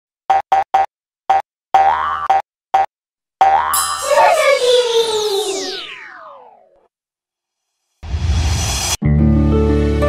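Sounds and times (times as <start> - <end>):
bouncy jingle notes: 3.5 - 5.1
magic sparkle effect: 3.8 - 6.0.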